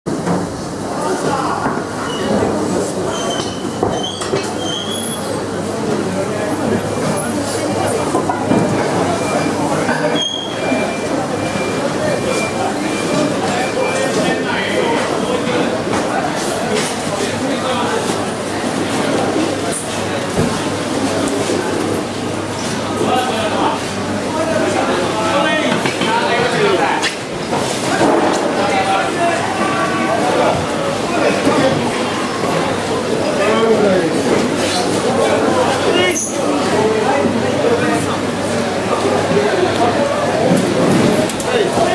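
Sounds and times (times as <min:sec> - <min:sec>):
short high squeaks: 0:09.9 - 0:11.0.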